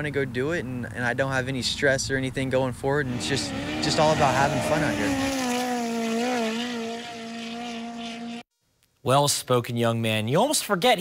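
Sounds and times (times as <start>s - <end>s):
race car engine running: 3.1s - 8.4s.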